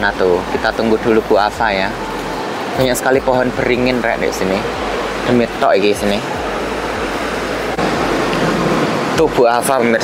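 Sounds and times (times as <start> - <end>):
city street rushing noise: 0.0 - 10.0
low hum: 3.2 - 9.4.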